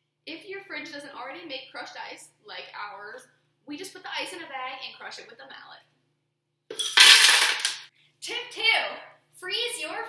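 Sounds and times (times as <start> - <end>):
ice clattering into blender jar: 6.8 - 7.8.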